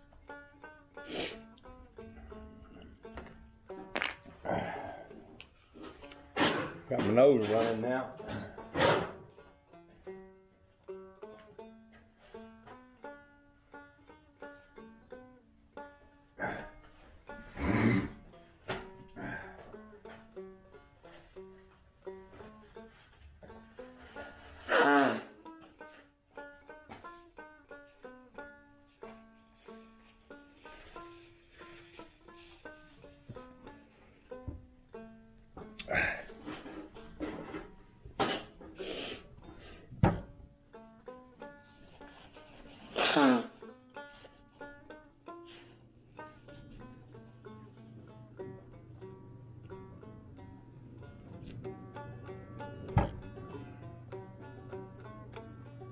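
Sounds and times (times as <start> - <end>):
bluegrass banjo music: 0.0 - 55.9.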